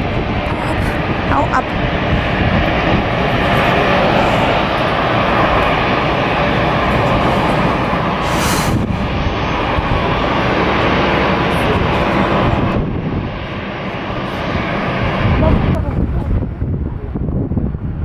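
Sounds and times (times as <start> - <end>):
jet engines running: 0.0 - 18.0.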